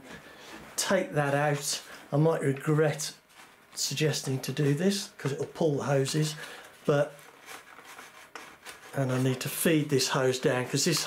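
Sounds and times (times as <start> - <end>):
fingers rubbing and handling: 7.0 - 11.0.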